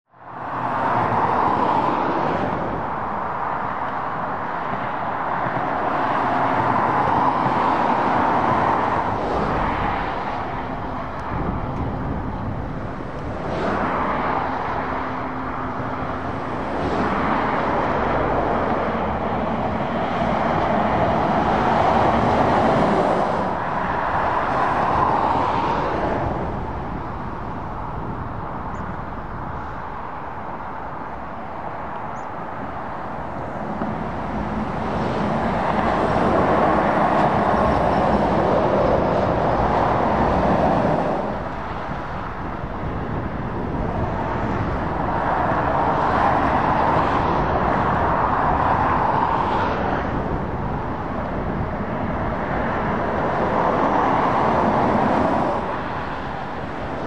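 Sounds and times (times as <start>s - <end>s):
lorries and cars passing: 0.1s - 57.0s.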